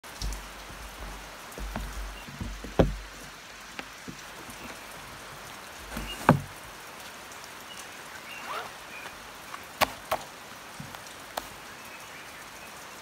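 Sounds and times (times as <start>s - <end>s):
book knocking on wooden table: 0.2s - 4.8s, 5.8s - 6.5s.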